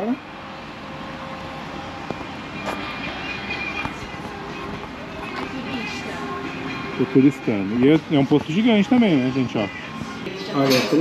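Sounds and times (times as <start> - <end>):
traffic hum: 0.0 - 11.0.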